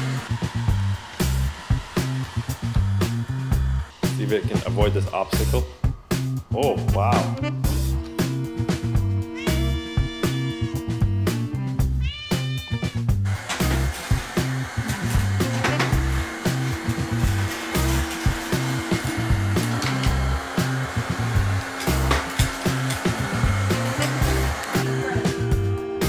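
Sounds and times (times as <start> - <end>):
robot vacuum whirring: 0.0 - 4.2, 13.2 - 25.5
background music with steady beat: 0.0 - 26.0
cat meowing: 9.3 - 10.8, 11.9 - 13.1.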